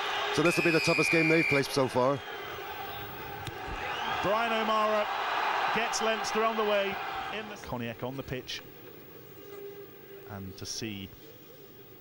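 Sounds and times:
stadium crowd noise: 0.0 - 9.1.

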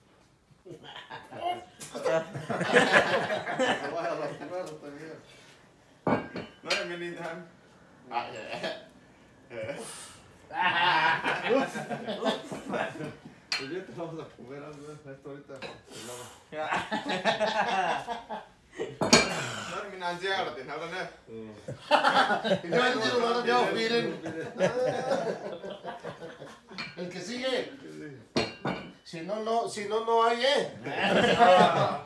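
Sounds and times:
man talking: 22.4 - 25.7.

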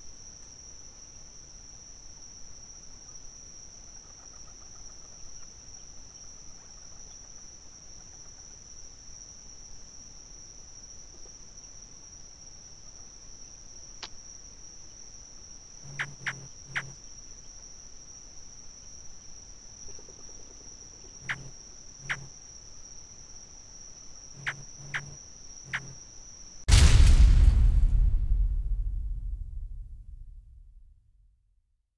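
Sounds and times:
crickets trilling: 0.0 - 26.7
short sharp chirps: 15.8 - 17.0, 21.2 - 22.3, 24.4 - 26.0.

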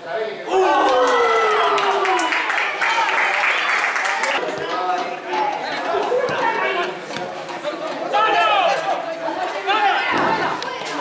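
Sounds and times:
crowd and players shouting: 0.4 - 11.0.

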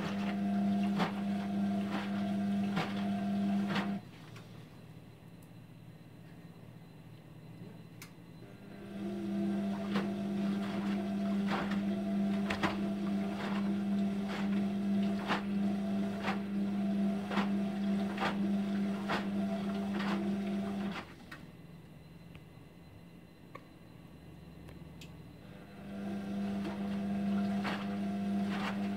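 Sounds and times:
washing machine motor humming: 0.0 - 4.6, 7.6 - 22.0, 24.7 - 28.9.

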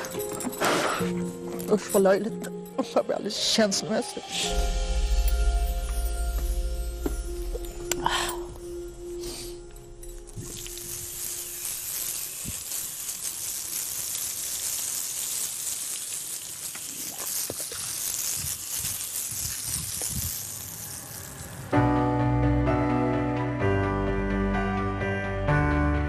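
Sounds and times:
music: 0.0 - 13.2, 21.2 - 26.0
hose water spraying: 0.0 - 21.9.

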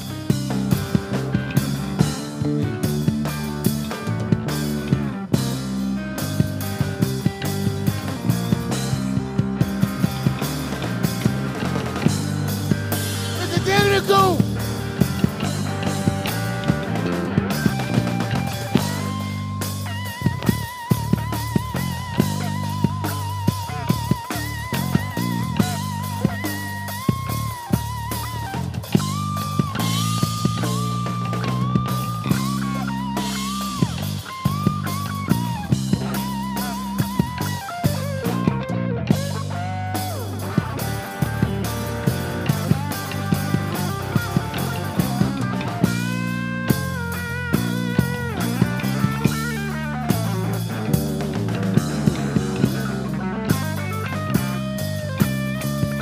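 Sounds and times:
drum kit steady beat: 0.0 - 56.0
electric bass: 0.0 - 56.0
electric guitar lead: 0.0 - 56.0.

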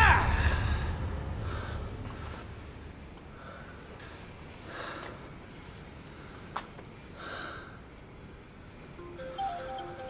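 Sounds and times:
low rumble: 0.2 - 3.4.

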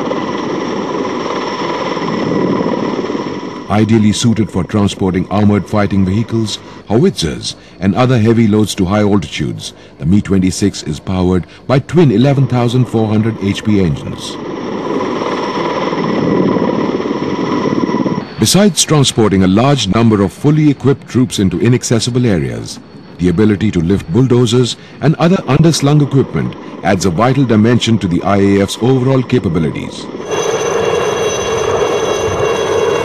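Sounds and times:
helicopter rotor chop: 0.0 - 33.0
high turbine whine: 0.0 - 33.0.

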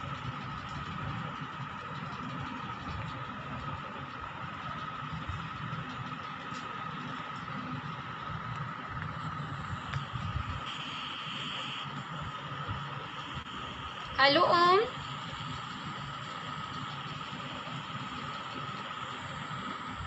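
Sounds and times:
high-pitched whine: 0.0 - 20.0
low rumble and hiss: 0.0 - 20.0.

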